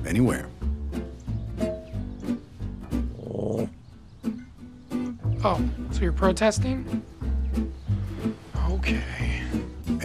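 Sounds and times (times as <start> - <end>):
plucked guitar music: 0.0 - 10.0.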